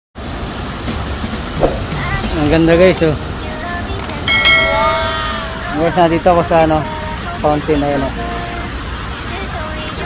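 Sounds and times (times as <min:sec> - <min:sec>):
fountain water spraying and splashing: 0:00.2 - 0:10.0.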